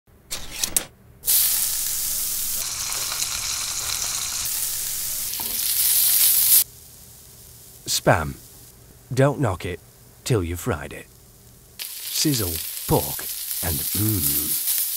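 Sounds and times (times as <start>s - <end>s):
meat sizzling in a pan: 1.3s - 8.8s, 11.1s - 14.9s.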